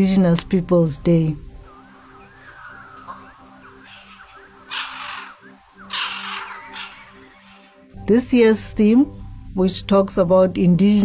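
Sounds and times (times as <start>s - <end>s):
soft background music: 0.0s - 11.0s
birds chirping: 1.4s - 8.0s
loud harsh bird calls: 1.7s - 8.0s.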